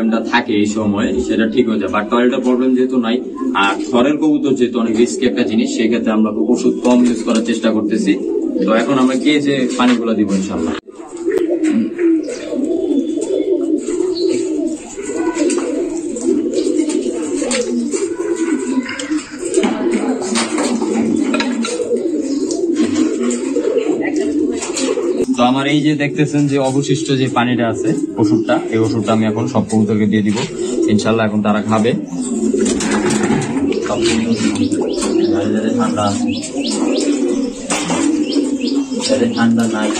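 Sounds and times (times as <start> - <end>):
pigeons cooing: 0.0 - 39.9.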